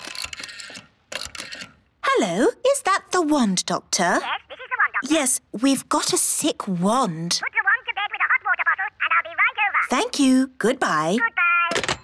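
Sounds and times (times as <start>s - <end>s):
rotary telephone dial clicking: 0.0s - 1.8s.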